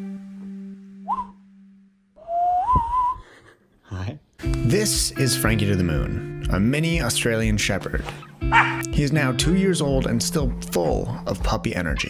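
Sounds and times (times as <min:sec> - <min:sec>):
person whistling: 0:01.0 - 0:01.4, 0:02.2 - 0:03.2.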